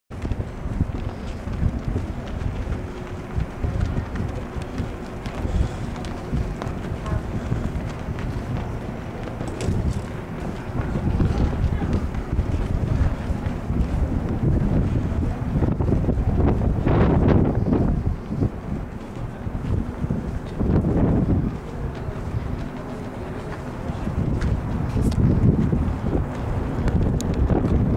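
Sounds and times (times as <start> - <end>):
wind buffeting microphone: 0.1 - 27.9.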